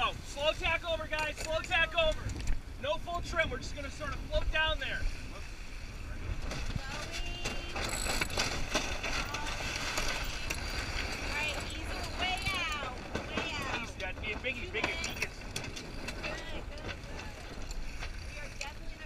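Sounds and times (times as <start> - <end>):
low wind rumble: 0.0 - 19.0
squeaky sliding tones of rope: 6.9 - 12.9
winch ratchet clicking: 7.7 - 8.6.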